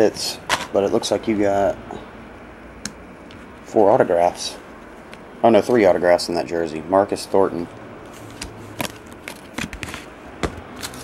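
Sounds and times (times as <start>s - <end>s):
cards clicking and tapping: 8.3s - 11.0s.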